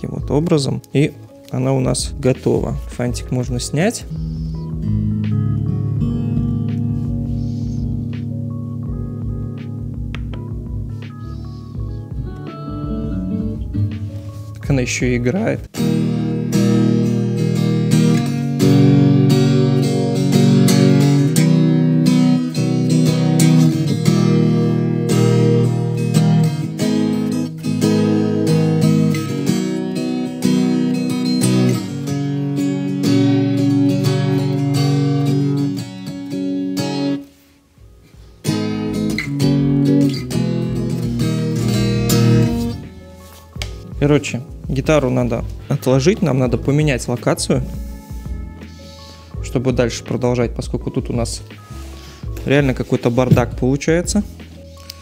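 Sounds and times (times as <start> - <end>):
acoustic guitar chords: 0.0 - 55.0.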